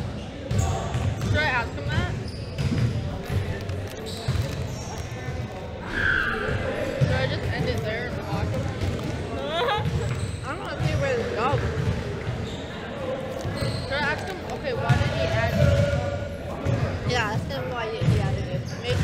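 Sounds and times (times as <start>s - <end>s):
basketballs bouncing on gym floor: 0.0s - 5.7s, 6.8s - 12.6s, 13.3s - 19.0s.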